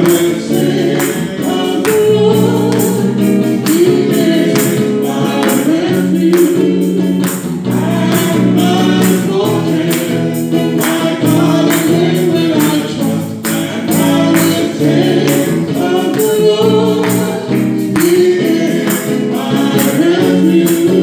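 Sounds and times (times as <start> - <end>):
electric guitar: 0.0 - 21.0
steady beat: 0.0 - 21.0
woman singing into microphone: 1.4 - 6.9.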